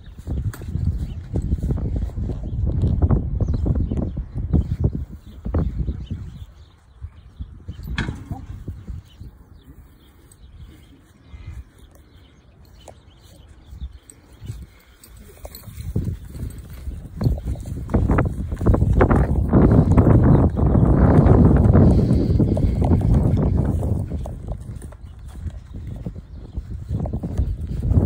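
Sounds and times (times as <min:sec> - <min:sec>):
heavy footsteps of steer on grass: 0:00.0 - 0:28.0.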